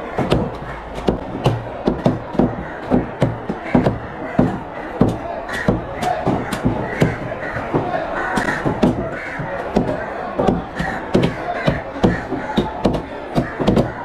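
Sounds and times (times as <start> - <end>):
cleaver chopping fish on wood: 0.2 - 14.0.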